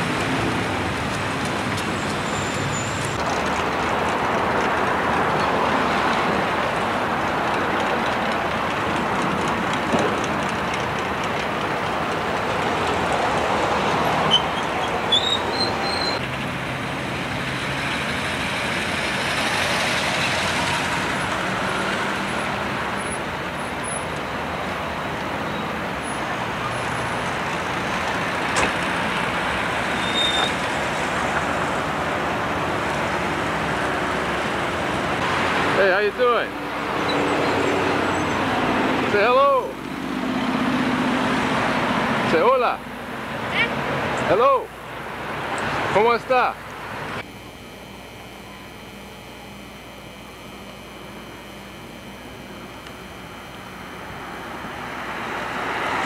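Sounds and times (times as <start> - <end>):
street traffic passing: 0.0 - 56.0
high squeals: 1.9 - 3.2, 14.0 - 16.2, 29.8 - 30.7.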